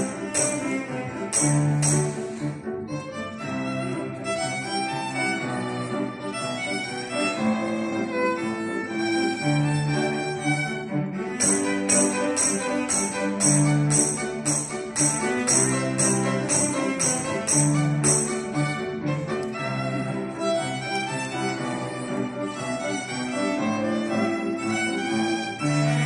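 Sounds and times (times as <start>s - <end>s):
tambourine jingling: 0.0s - 2.6s, 11.4s - 18.8s
violin cello and piano playing: 0.0s - 26.0s.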